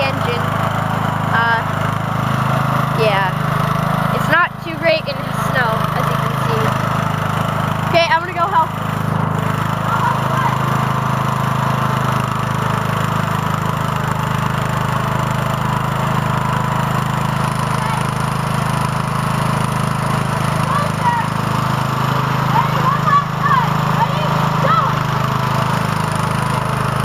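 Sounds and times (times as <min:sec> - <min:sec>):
lawn tractor engine running: 0:00.0 - 0:27.0.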